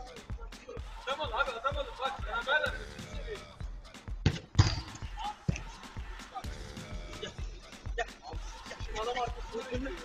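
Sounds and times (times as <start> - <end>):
football thumps: 4.2 - 5.7.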